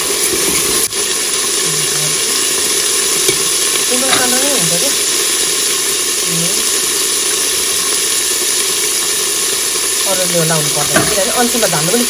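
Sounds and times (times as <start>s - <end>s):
pulses sizzling in hot oil: 0.0s - 12.0s.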